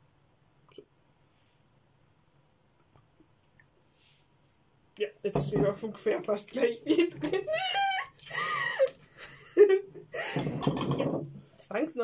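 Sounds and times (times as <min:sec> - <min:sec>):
woman giggling: 0:06.8 - 0:10.7.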